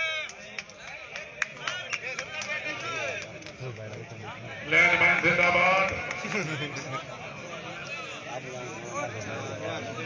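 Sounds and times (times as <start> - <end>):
crowd talking and calling: 0.0 - 10.0.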